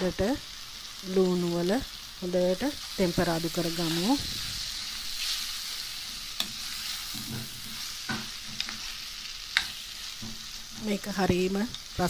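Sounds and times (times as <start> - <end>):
chicken sizzling in a pan: 0.0 - 12.0.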